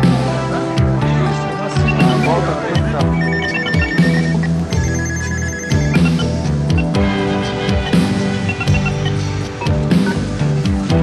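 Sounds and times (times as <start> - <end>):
background music with bass line: 0.0 - 11.0
electronic telephone ringing: 1.8 - 7.1, 7.7 - 10.2.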